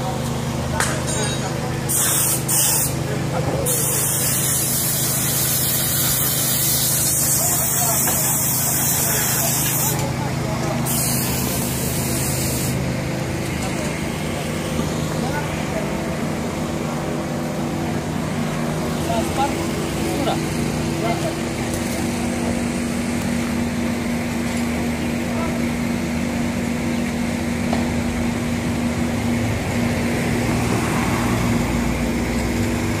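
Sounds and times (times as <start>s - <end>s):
machinery humming: 0.0s - 33.0s
high air jet hiss: 1.9s - 3.0s, 3.7s - 10.0s, 10.8s - 12.9s.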